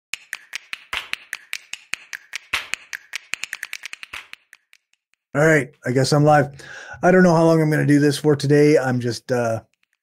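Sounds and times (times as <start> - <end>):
rapid sharp clicks: 0.1 - 5.3, 9.5 - 10.0.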